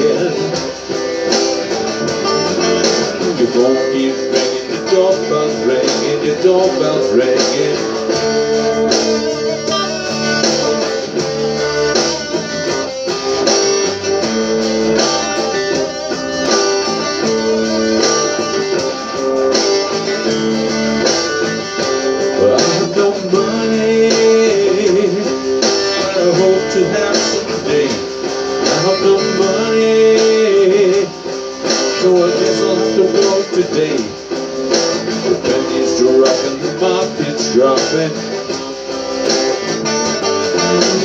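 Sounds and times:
electric guitar playing: 0.0s - 41.0s.

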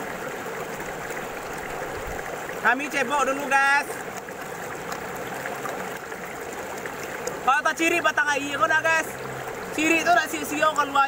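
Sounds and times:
stream rushing: 0.0s - 11.0s.

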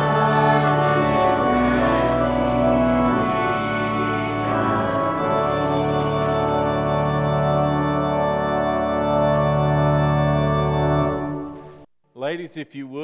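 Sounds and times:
organ sustained chord: 0.0s - 11.9s.

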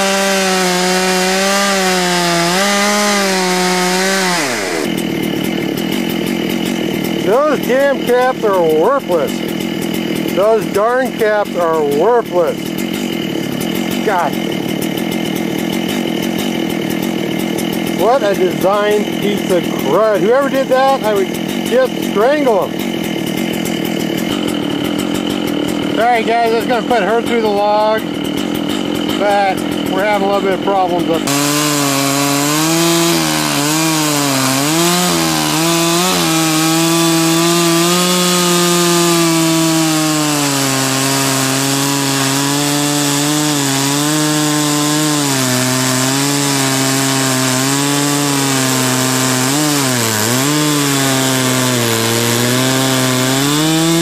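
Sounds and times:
chainsaw engine running: 0.0s - 54.0s.

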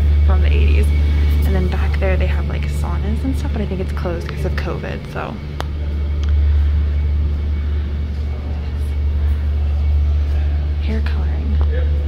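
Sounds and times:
loud steady low hum: 0.0s - 12.0s.

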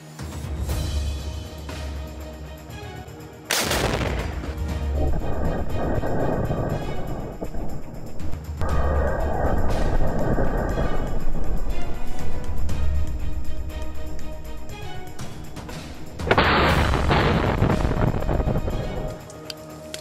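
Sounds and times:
background music: 0.0s - 20.0s
rocket launcher blast: 3.5s - 4.7s, 16.2s - 19.0s
long rumble: 3.8s - 19.2s.

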